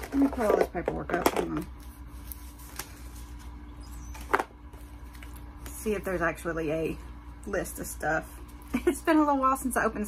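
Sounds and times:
papers being handled: 0.0 - 6.0
low background hum: 0.0 - 10.0.

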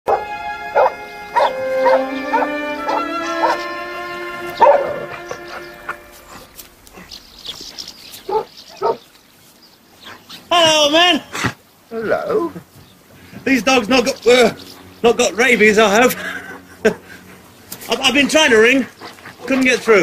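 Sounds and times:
dogs barking: 0.1 - 3.8, 4.5 - 6.5, 8.2 - 9.1
music with long held notes: 0.1 - 7.8.

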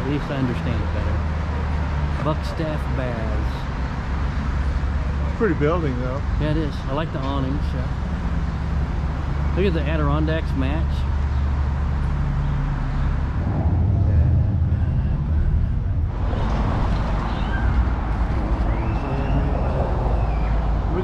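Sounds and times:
traffic engine rumble: 0.0 - 21.0
faint voices of passers-by: 13.4 - 21.0.

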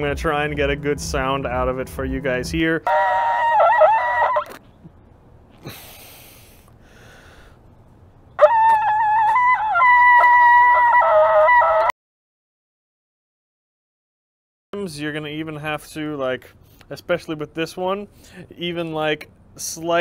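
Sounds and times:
ram's horn blasts: 0.0 - 4.6.

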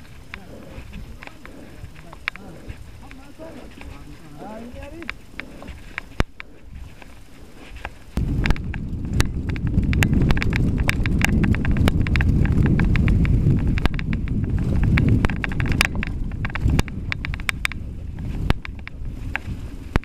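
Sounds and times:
bike tyres rumbling on dirt: 0.0 - 20.0
rattling clicks from bike: 0.0 - 20.0.

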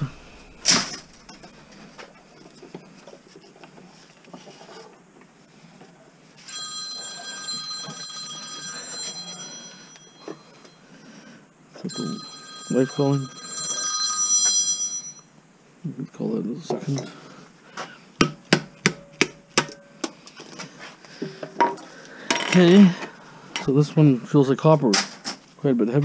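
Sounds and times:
smartphone ringtone: 6.4 - 11.1, 11.8 - 15.3.

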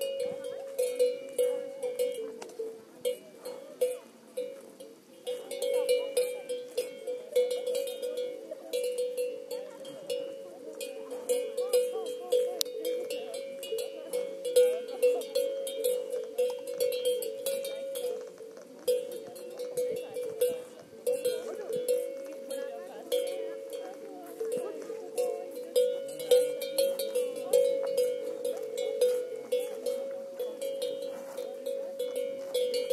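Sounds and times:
cowbells clanking: 0.0 - 32.9.

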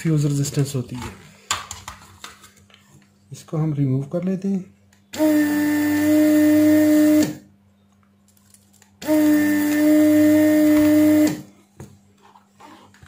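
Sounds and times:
desoldering pump humming and hissing: 4.5 - 7.6, 8.8 - 13.0.

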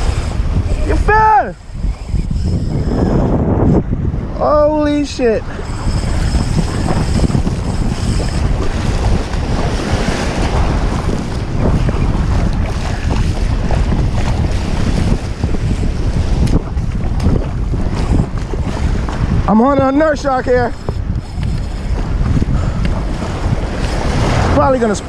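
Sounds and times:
wind buffeting microphone: 0.0 - 25.0
small waves washing onto sand: 8.3 - 25.0.

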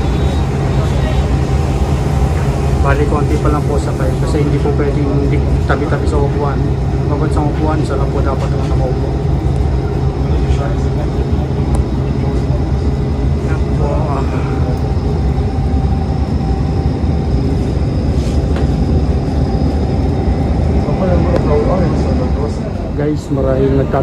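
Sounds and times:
bus engine drone and road noise: 0.0 - 24.0.

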